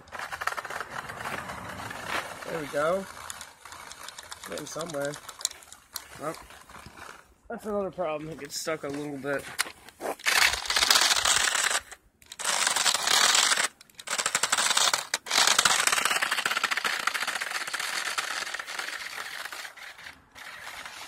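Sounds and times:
tires churning snow: 0:00.0 - 0:05.2
rc car drivetrain rattling: 0:00.0 - 0:07.2, 0:10.2 - 0:21.0.

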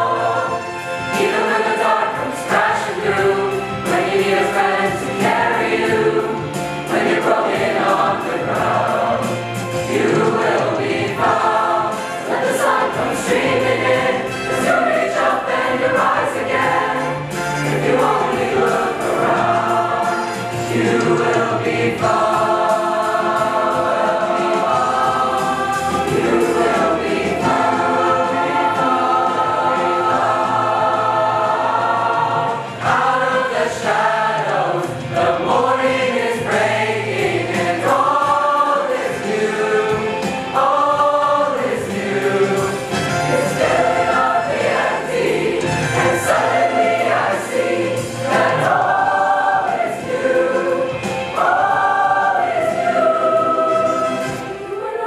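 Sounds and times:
choir singing: 0:00.0 - 0:55.0.

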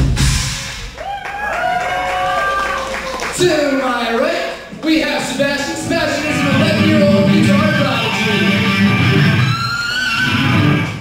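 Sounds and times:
heavy metal band playing: 0:05.6 - 0:11.0.

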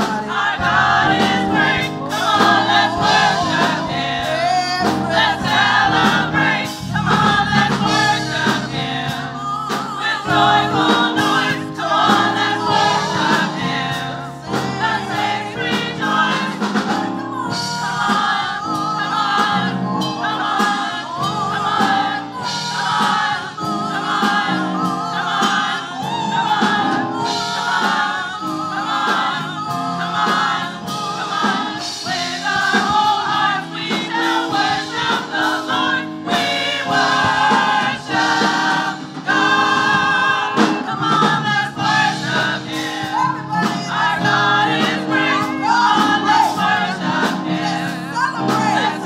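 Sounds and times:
church choir singing in parts: 0:00.0 - 0:49.0.

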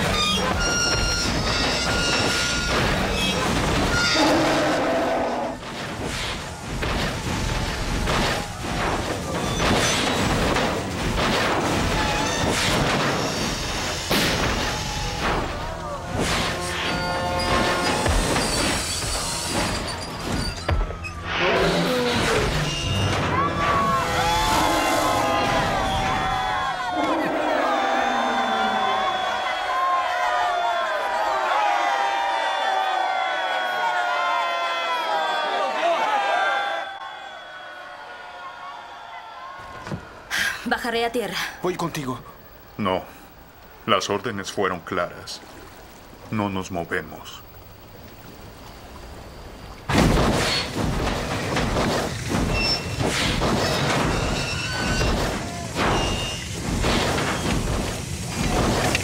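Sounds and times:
crashes and heavy thuds: 0:00.0 - 0:04.4, 0:05.6 - 0:21.3, 0:49.9 - 0:59.0.

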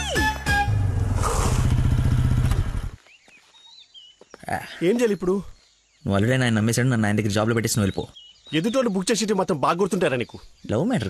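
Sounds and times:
engine rumbling in rapid pulses: 0:00.2 - 0:03.0.

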